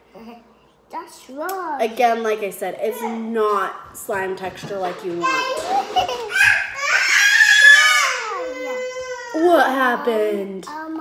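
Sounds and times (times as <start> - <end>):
child shrieking and wailing: 5.3 - 9.4.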